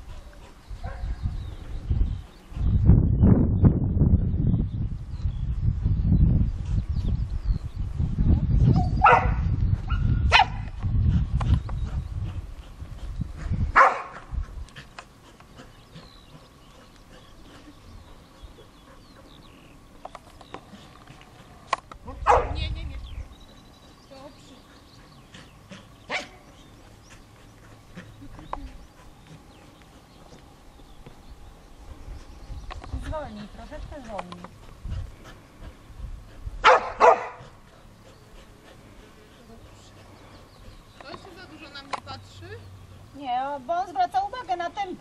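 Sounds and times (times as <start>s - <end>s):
dog barking: 9.0s - 10.6s, 13.8s - 14.2s, 22.2s - 22.6s, 36.6s - 37.5s.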